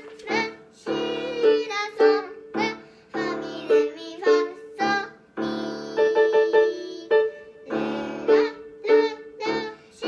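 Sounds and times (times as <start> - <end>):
young children singing: 0.0 - 10.0.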